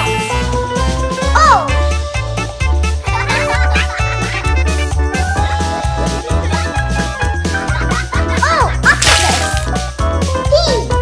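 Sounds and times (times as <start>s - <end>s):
cheerful background music: 0.0s - 11.0s.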